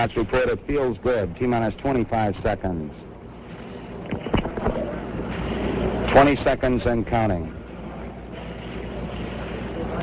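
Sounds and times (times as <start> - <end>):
old recording hiss and rumble: 0.0 - 10.0.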